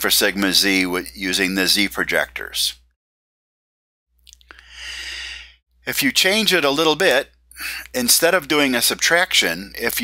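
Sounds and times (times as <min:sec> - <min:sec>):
man speaking: 0:00.0 - 0:02.9, 0:05.8 - 0:10.0
man breathing in: 0:04.5 - 0:05.6.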